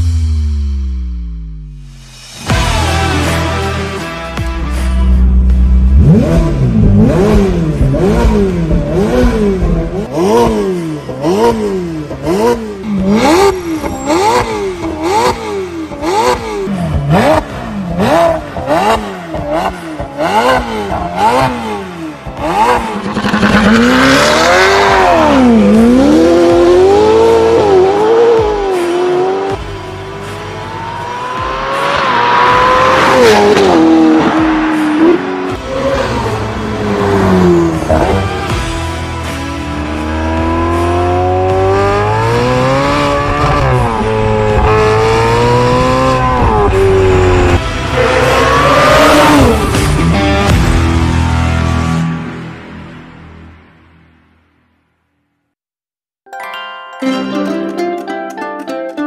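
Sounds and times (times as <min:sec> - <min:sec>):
sports car engine revving: 0:05.2 - 0:51.9.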